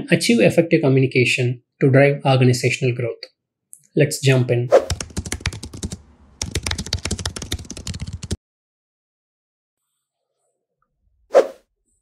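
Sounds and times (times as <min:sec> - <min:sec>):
computer keyboard typing: 0:04.9 - 0:08.4.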